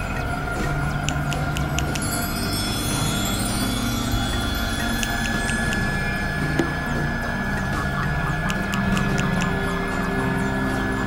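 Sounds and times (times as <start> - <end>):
low drones: 0.0 - 11.0
steady high tone: 0.0 - 11.0
sharp clicks: 8.4 - 9.6.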